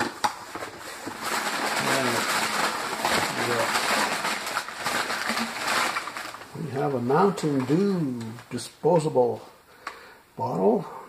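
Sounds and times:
packing paper crackling and rustling: 0:00.0 - 0:08.5.

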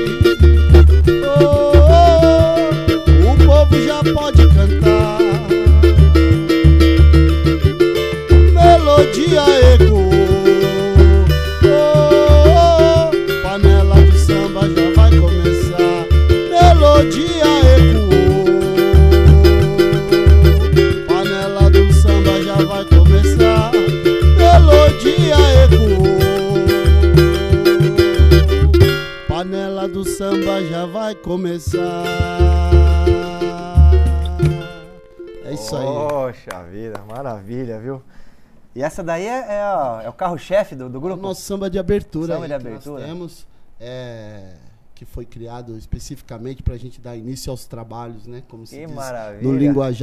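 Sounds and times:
barrel hand drum beating: 0:00.0 - 0:29.5, 0:31.7 - 0:34.8
sliding melody: 0:00.0 - 0:36.1
strummed small guitar: 0:00.0 - 0:36.2.

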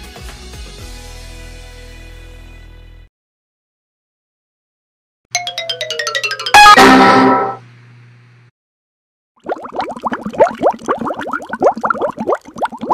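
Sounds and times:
logo jingle with ringing chord: 0:05.4 - 0:07.6
bubbling rising blips: 0:09.4 - 0:12.9.

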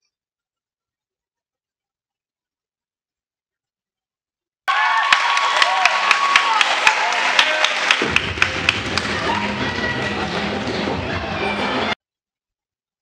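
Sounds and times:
crowd roar: 0:04.7 - 0:12.0
sharp claps and thuds: 0:05.9 - 0:09.2.

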